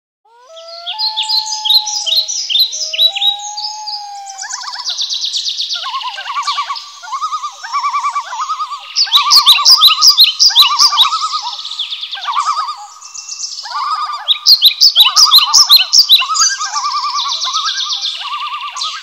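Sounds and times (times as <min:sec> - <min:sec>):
songbirds chirping: 0:00.3 - 0:19.0.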